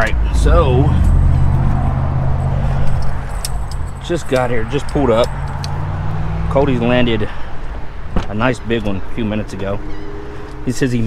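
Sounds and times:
steady low rumble: 0:00.0 - 0:11.0
light clicks and rattles: 0:02.8 - 0:05.8
truck door swinging open: 0:08.1 - 0:08.6.

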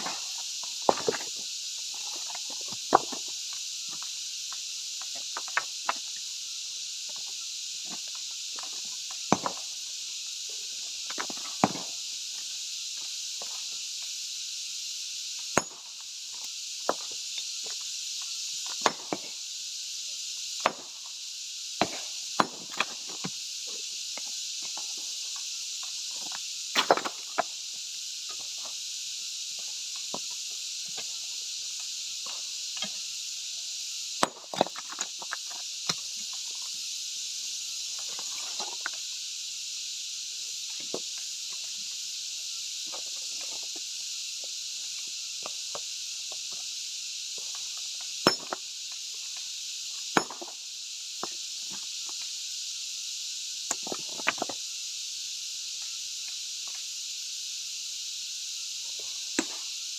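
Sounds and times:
high-pitched insect drone: 0:00.0 - 0:59.9
stone chunks knocking and clinking: 0:48.2 - 0:48.6, 0:50.2 - 0:50.5.

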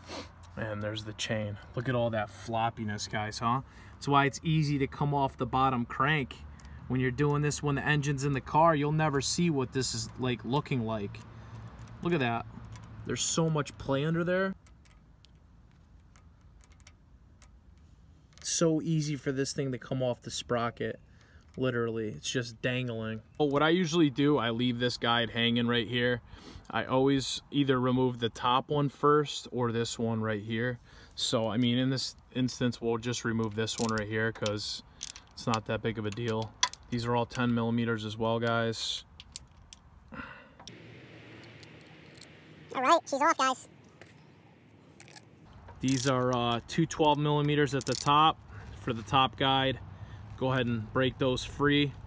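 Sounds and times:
timing chain clicking: 0:47.8 - 0:48.2.

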